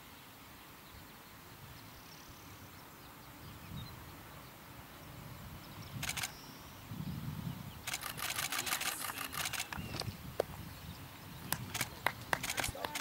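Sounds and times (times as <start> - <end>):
camera shutter clicking: 6.0 - 6.4, 7.9 - 10.0, 11.7 - 13.0.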